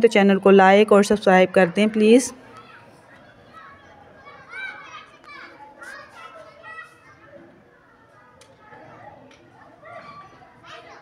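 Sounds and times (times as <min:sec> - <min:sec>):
distant children chattering: 0:00.0 - 0:11.0.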